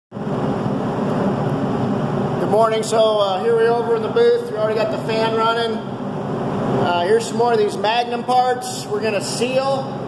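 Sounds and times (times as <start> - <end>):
ventilation fan running: 0.1 - 10.0.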